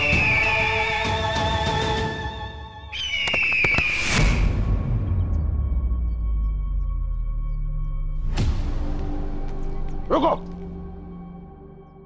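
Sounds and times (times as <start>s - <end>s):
dramatic background score: 0.0s - 12.0s.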